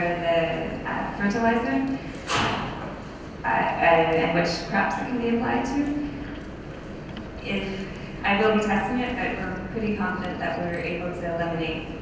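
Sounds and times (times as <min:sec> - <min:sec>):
woman talking into microphone: 0:00.0 - 0:02.0, 0:03.4 - 0:06.3, 0:07.4 - 0:12.0.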